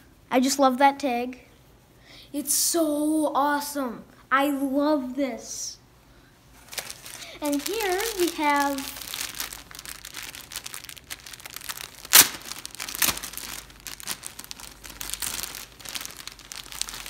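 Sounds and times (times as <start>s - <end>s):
plastic bag crinkling and rustling: 6.6s - 17.0s
sharp plastic crackle: 6.6s - 17.0s.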